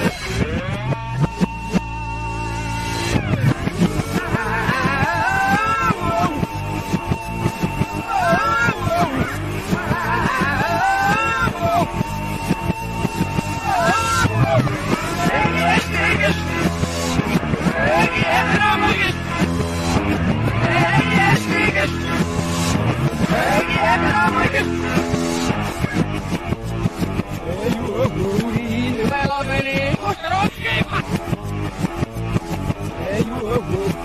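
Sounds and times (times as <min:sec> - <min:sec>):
reversed drum beat: 0:00.0 - 0:34.0
reversed vocal line: 0:03.2 - 0:25.2.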